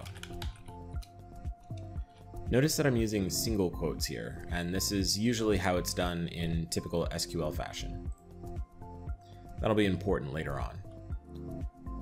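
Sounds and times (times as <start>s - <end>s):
keyboard key clicks: 0.0s - 1.1s
soft background music: 0.0s - 12.0s.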